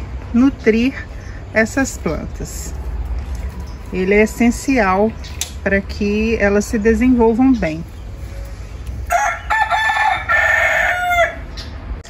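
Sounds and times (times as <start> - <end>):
rooster crowing: 9.1 - 11.5.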